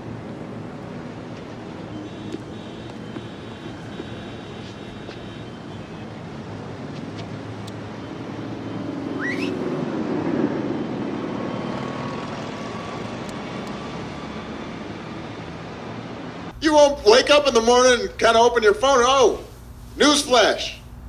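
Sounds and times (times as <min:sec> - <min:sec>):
traffic noise: 0:00.0 - 0:21.0
rising sweep: 0:08.1 - 0:16.5.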